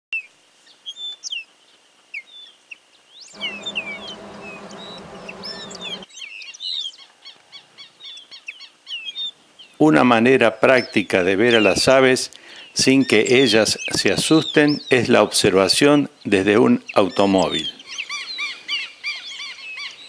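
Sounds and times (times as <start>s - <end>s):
bird ticking trill: 3.4s - 6.0s
low hum with hiss: 3.4s - 6.0s
birds chirping: 3.4s - 6.1s.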